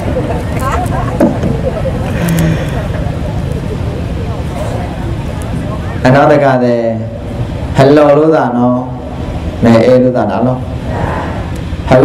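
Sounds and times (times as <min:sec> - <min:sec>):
low rumbling noise: 0:00.0 - 0:12.0.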